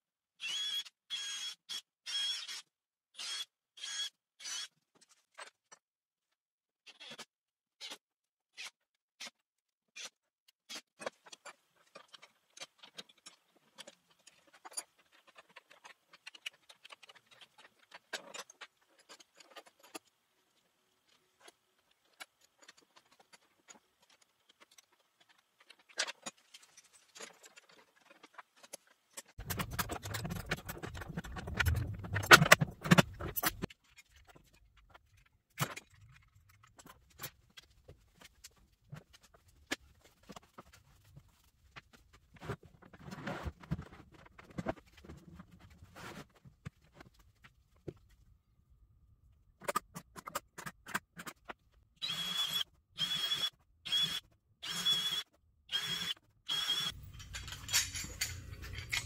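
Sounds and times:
rattling and knocking: 29.4s - 33.7s
steel hardware clicking and clinking: 56.9s - 59.0s.

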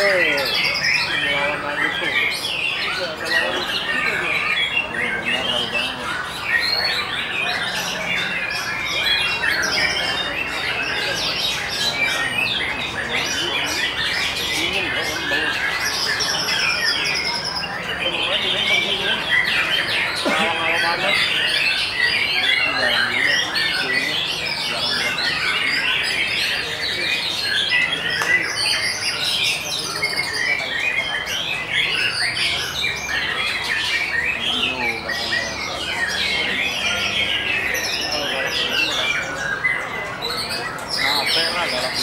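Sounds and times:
songbird singing whistles and chatter: 0.0s - 42.0s.

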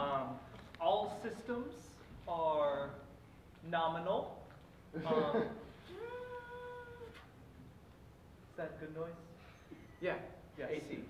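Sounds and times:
person holding a vocal note: 5.9s - 7.3s.

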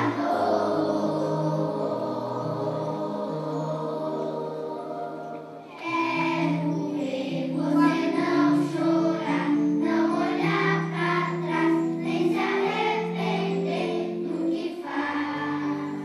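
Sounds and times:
children's choir singing: 0.0s - 16.0s
electronic keyboard: 0.0s - 16.0s.

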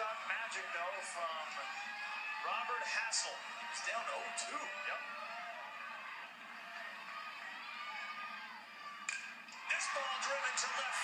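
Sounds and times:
ballpark crowd noise: 0.0s - 11.0s.

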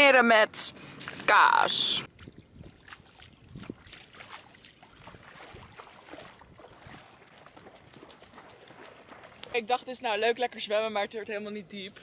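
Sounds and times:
footsteps wading through water: 0.8s - 10.5s.

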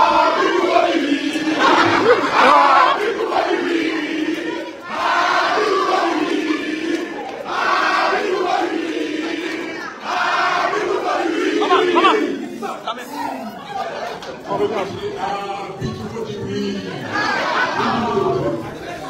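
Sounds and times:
men chanting loudly: 0.0s - 13.0s.

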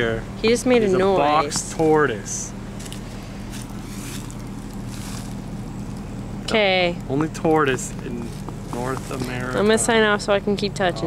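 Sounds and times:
steady low hum: 0.0s - 11.0s
faint handling rustles: 2.7s - 6.2s, 7.8s - 9.8s.

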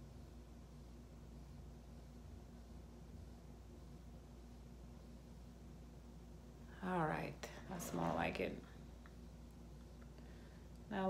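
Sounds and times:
woman speaking: 6.7s - 8.8s.

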